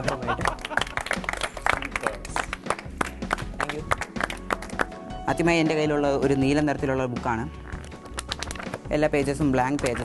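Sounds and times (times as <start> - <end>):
children clapping: 0.0 - 4.9, 7.8 - 8.8
music: 0.0 - 10.0.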